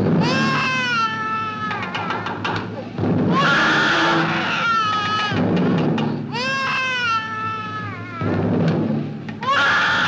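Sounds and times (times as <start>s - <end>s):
background music: 0.0s - 10.0s
toddler crying: 0.2s - 2.7s, 3.3s - 5.5s, 6.2s - 8.5s, 9.4s - 10.0s.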